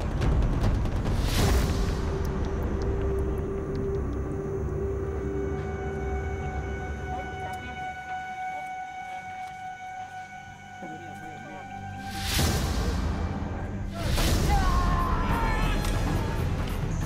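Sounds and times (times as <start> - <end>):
deep rumble: 0.0 - 7.4.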